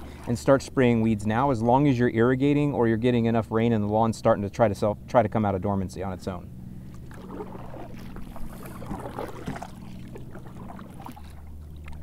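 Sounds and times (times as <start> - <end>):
paddle splashing water: 0.0 - 1.4, 6.7 - 12.0.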